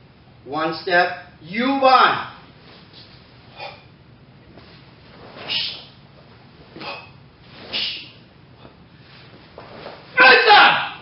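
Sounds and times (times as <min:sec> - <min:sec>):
man's sharp shout: 0:10.2 - 0:11.0.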